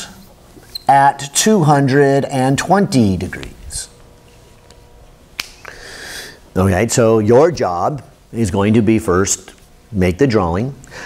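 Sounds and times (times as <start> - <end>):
sharp click: 5.4 - 5.8
person drawing breath: 5.6 - 6.4.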